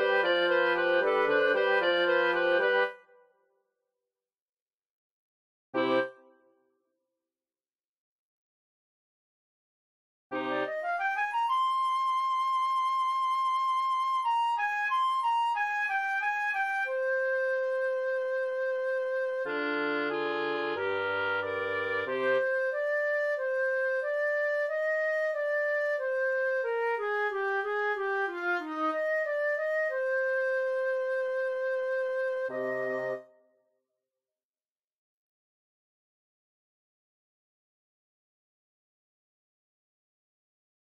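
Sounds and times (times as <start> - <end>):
wind quartet playing: 0.0 - 2.9, 14.3 - 33.2.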